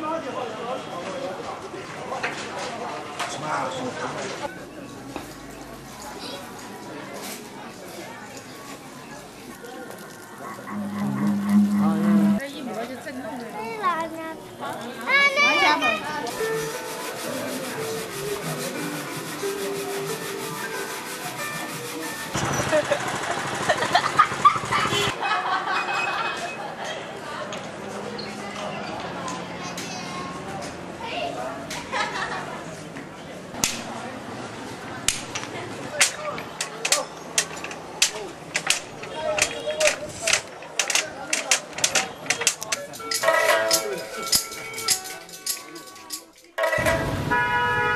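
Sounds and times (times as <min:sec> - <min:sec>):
murmur of people talking: 0:00.0 - 0:23.4, 0:25.1 - 0:47.3
scattered clicks and knocks: 0:35.1 - 0:46.9.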